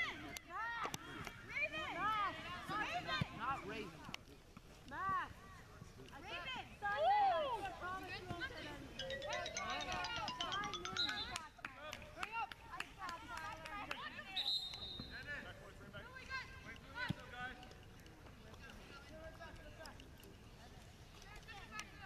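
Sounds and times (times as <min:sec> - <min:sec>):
people calling and shouting: 0:00.0 - 0:22.0.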